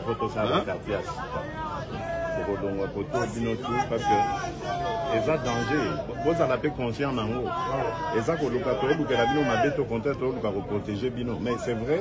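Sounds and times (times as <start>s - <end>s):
excited chatter of people: 0.0s - 12.0s.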